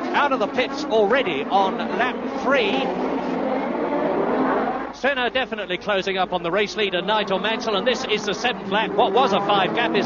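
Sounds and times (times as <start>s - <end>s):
racing car engine at speed: 0.0s - 5.0s, 6.2s - 10.0s.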